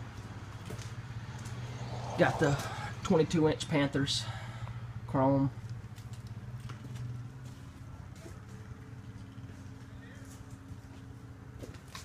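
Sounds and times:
steady low hum: 0.0 - 12.0
light footsteps: 5.6 - 12.0.

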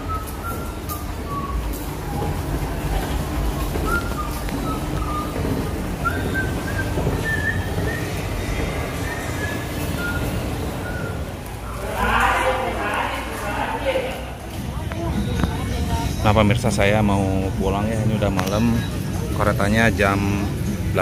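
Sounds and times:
escalator rumble: 0.0 - 21.0.

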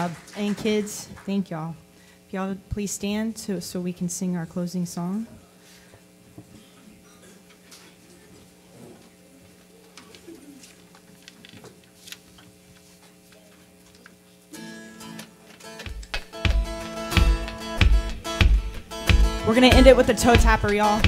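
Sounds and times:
strummed acoustic guitar: 14.5 - 21.0
low beats: 15.9 - 21.0
sustained instrumental chord: 16.3 - 21.0.

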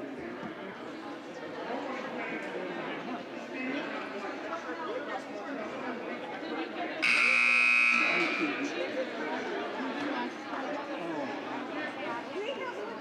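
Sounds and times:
crowd chatter: 0.0 - 13.0
scoreboard horn buzzing: 7.0 - 8.6.

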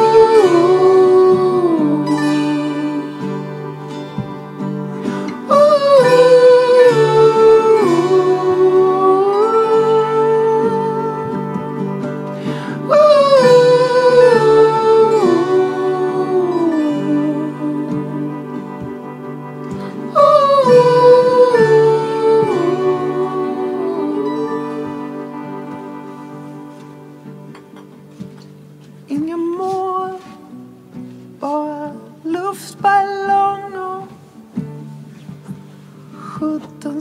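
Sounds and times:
acoustic guitar: 0.0 - 37.0
person singing wordless notes: 0.0 - 37.0
singer breathing: 5.0 - 5.4, 12.2 - 12.9, 19.7 - 20.1
person singing a held note: 19.7 - 27.3.

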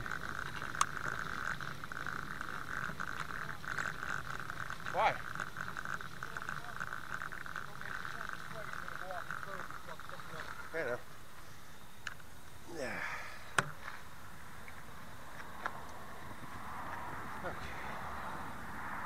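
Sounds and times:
night insects trilling: 0.0 - 19.0.

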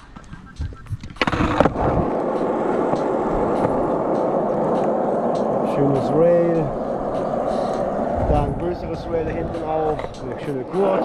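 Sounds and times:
skateboard clacks: 0.0 - 8.4, 9.3 - 11.0
skateboard wheels rolling on asphalt: 0.0 - 11.0.

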